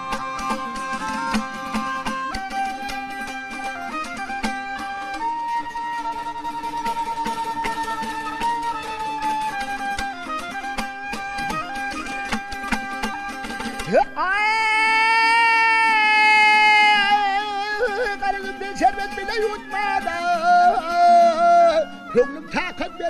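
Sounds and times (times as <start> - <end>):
dutar strummed rapidly: 0.0 - 23.0
man singing long high notes: 13.8 - 23.0.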